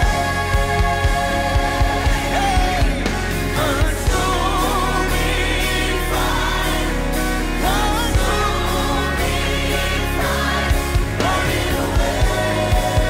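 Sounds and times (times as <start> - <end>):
choir singing gospel song: 0.0 - 13.0.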